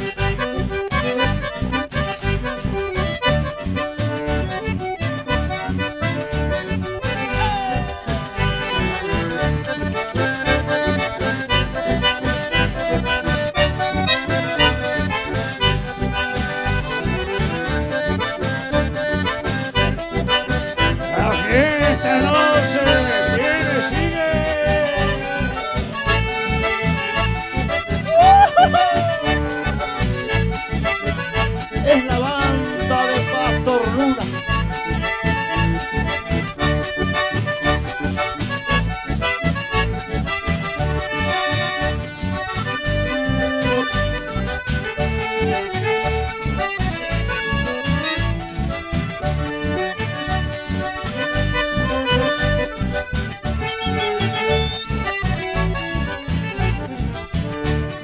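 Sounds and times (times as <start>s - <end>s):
accordion: 0.0s - 58.0s
band playing dance music: 5.1s - 17.6s, 18.5s - 36.3s, 53.4s - 57.6s.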